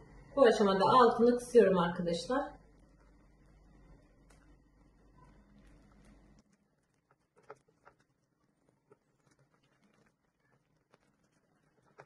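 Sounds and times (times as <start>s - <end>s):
spatula stirring thick dough: 2.7s - 12.0s.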